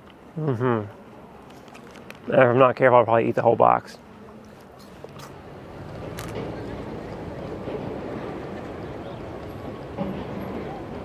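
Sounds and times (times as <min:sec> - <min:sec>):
traffic: 0:00.0 - 0:11.0
murmur of distant voices: 0:04.0 - 0:11.0.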